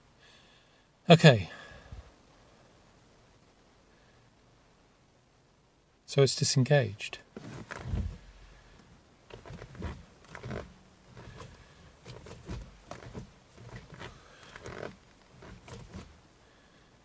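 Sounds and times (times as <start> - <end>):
gearbox clunks and grating knocks: 7.4 - 8.2, 9.3 - 16.1.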